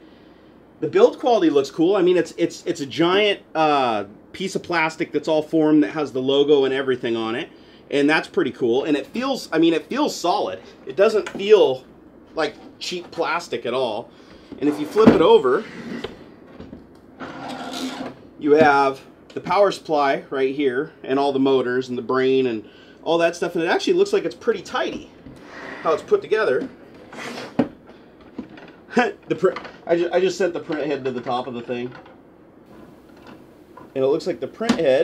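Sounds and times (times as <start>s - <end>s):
plastic case scraping on desk: 14.6s - 16.2s, 17.2s - 18.2s, 27.0s - 27.7s.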